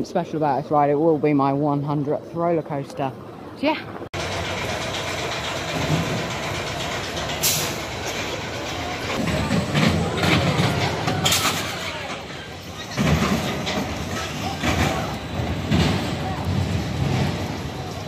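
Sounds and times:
roller coaster rattling on track: 0:04.2 - 0:18.0.

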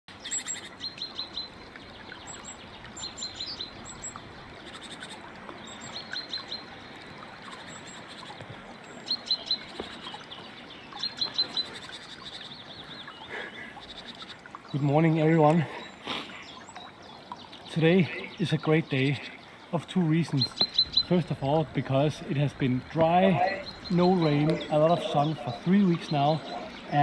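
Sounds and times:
light rain hiss: 0:00.1 - 0:27.0
songbird singing: 0:00.1 - 0:27.0.

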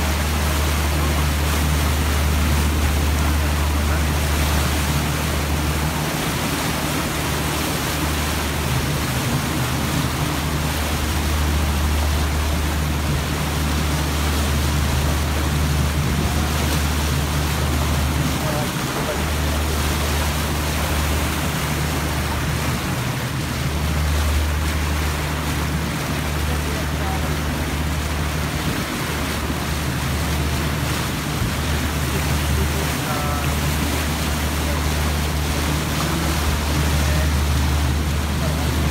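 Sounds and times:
boat engine rumbling: 0:00.0 - 0:38.9.

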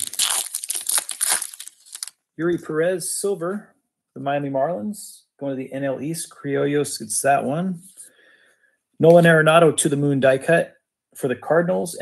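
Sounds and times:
foil wrapper crinkling: 0:00.0 - 0:02.2.

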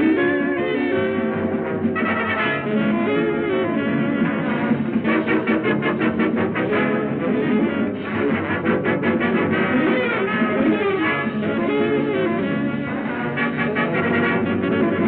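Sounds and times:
swing band playing dance music: 0:00.0 - 0:15.0.

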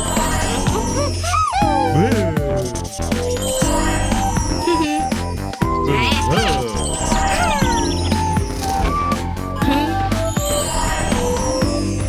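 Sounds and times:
background music: 0:00.0 - 0:12.0
cartoon sliding tones: 0:00.9 - 0:05.0.

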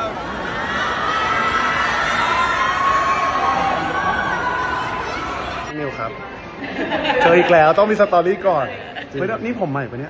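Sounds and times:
crowd screaming and cheering: 0:00.0 - 0:07.2.

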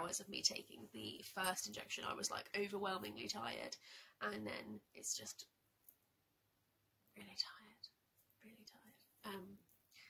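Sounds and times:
woman whispering: 0:07.1 - 0:10.0.

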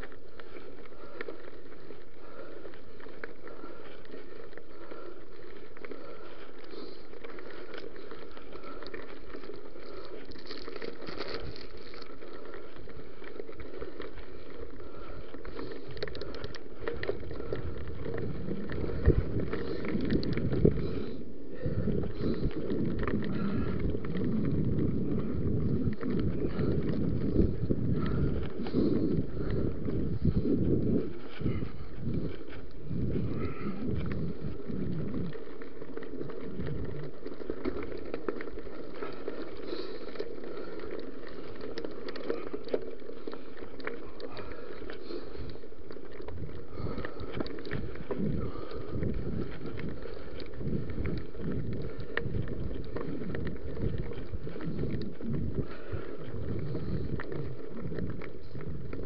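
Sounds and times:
bike tyres crunching on gravel: 0:00.0 - 0:59.0
wind on microphone: 0:16.9 - 0:37.2, 0:46.3 - 0:59.0.

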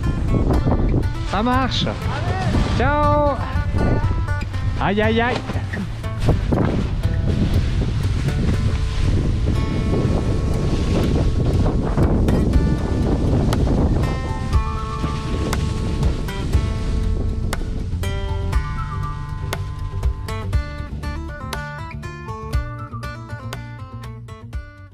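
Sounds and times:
wind rushing over microphone: 0:00.0 - 0:21.4
background music: 0:00.0 - 0:24.9.

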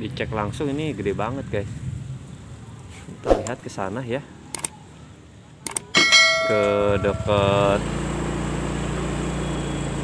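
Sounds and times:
steady pitched tone: 0:06.0 - 0:07.8
bright bell ding: 0:06.0 - 0:07.9.

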